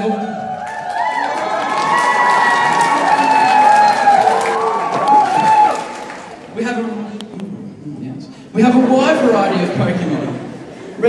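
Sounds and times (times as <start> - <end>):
crowd cheering and shouting: 0.0 - 6.5
people clapping: 0.6 - 6.6.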